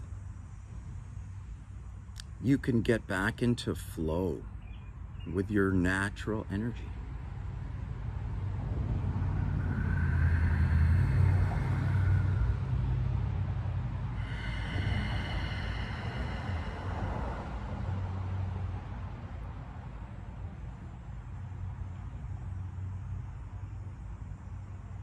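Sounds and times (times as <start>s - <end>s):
low rumble: 7.3s - 19.5s
steady high whine: 7.7s - 18.9s.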